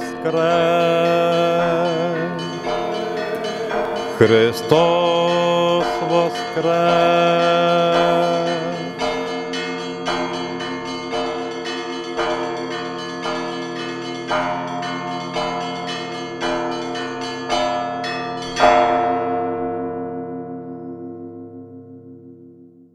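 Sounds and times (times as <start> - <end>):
church bells ringing: 0.0 - 22.8.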